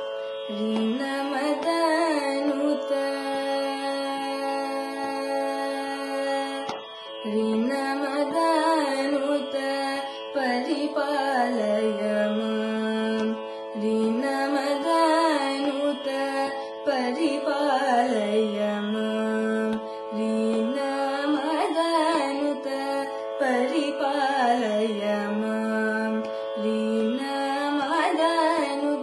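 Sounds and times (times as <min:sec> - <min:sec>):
girl singing ornamented melody: 0:00.0 - 0:29.0.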